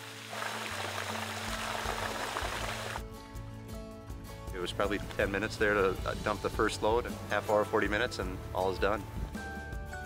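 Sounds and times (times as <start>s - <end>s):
water gushing from a hose: 0.0s - 3.0s
background music: 0.0s - 10.0s.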